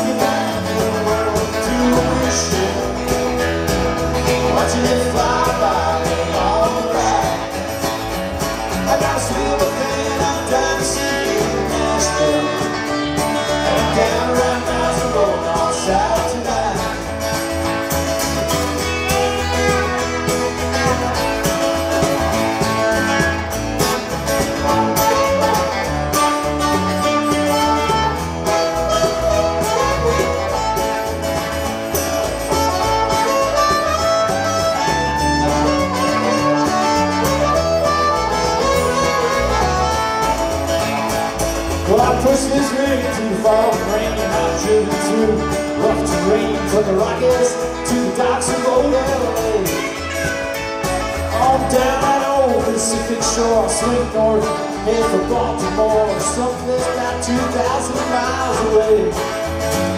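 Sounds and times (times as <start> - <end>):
bass guitar: 0.0 - 59.9
electric guitar: 0.0 - 59.9
hand percussion: 0.0 - 59.9
blues harmonica solo: 16.8 - 59.9.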